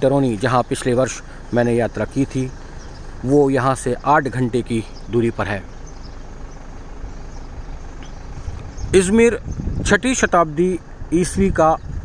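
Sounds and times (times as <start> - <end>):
low city traffic hum: 0.0 - 12.0.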